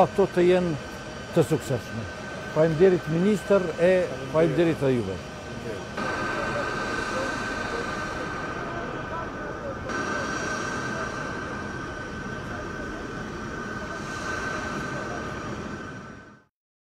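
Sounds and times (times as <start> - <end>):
low engine rumble: 0.0 - 16.4
high whine: 0.0 - 16.5.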